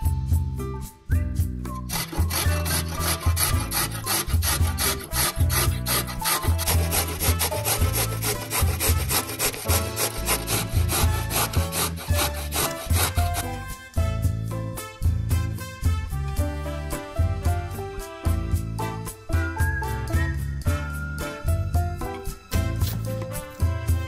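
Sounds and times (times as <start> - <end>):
carrot rasping on grater: 1.9 - 13.6.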